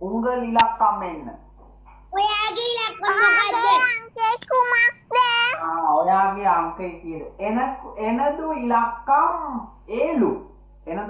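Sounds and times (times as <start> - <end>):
child singing: 2.2 - 5.8.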